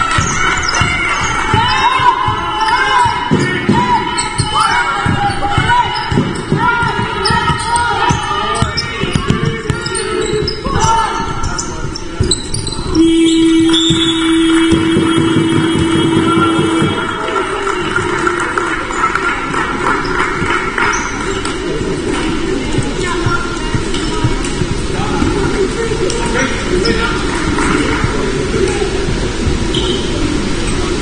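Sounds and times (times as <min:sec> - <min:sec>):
basketball dribbling: 0:00.0 - 0:13.0, 0:13.6 - 0:17.2, 0:19.2 - 0:25.4
sneakers squeaking: 0:00.0 - 0:18.1, 0:18.9 - 0:25.6, 0:26.3 - 0:28.2, 0:29.7 - 0:30.8
buzzer tone: 0:13.0 - 0:17.2.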